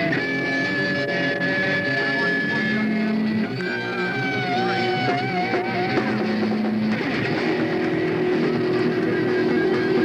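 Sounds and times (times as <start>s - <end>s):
electric guitars sustained notes: 0.0s - 10.0s.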